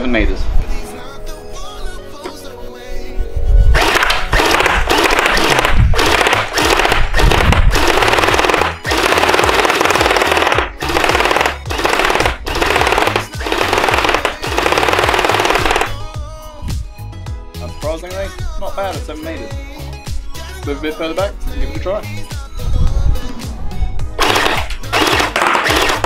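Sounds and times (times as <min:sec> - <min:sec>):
background music: 0:00.0 - 0:26.0
gel blaster firing bursts: 0:03.8 - 0:16.0, 0:24.2 - 0:26.0.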